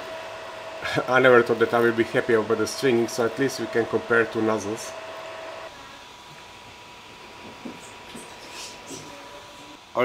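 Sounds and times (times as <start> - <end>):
printer whine: 0.0 - 10.0.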